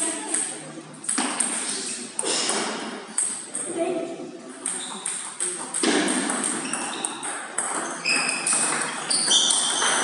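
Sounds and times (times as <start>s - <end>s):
table tennis ball clicking: 4.6s - 10.0s.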